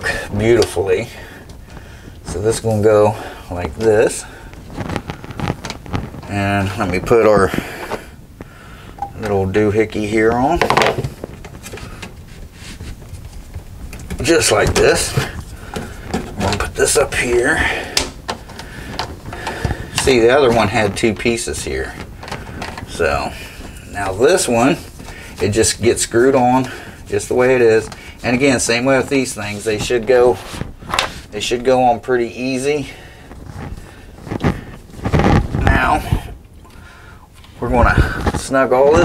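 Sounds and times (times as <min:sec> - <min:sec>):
plastic pipe rubbing and knocking: 0:01.4 - 0:09.4, 0:10.2 - 0:31.7, 0:33.3 - 0:36.5
plastic pipes clicking together: 0:17.9 - 0:20.2.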